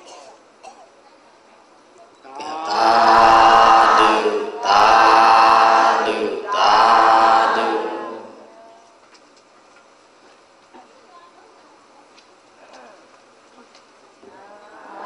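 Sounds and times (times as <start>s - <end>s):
congregation chanting in unison: 2.4s - 8.5s.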